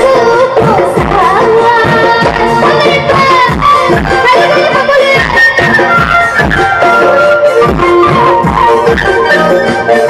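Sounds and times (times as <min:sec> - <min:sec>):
live band accompaniment: 0:00.0 - 0:10.0
woman singing into microphone: 0:00.0 - 0:10.0.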